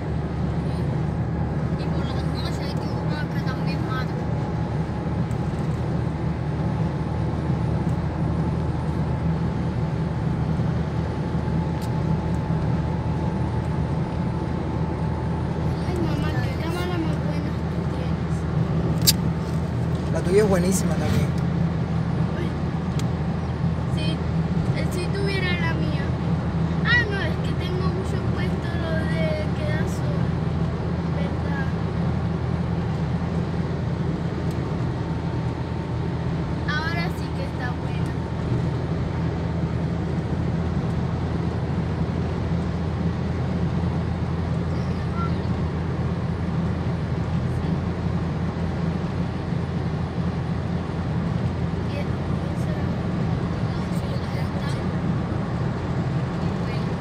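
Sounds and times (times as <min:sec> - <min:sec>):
car cabin road drone: 0:00.0 - 0:57.0.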